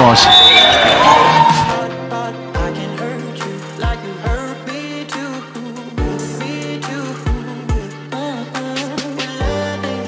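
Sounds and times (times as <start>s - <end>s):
players shouting: 0.0s - 1.8s
whistle blast: 0.0s - 1.8s
background music: 0.0s - 10.0s.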